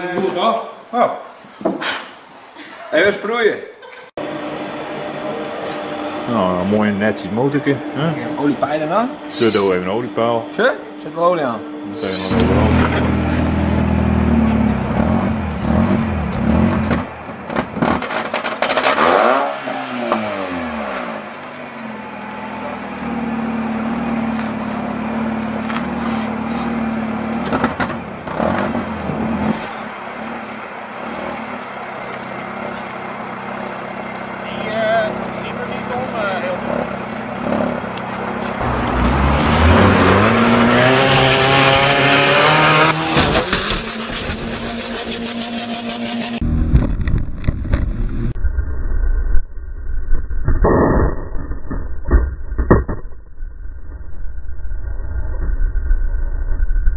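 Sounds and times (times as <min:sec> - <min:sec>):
car engine revving: 0:04.2 - 0:48.4.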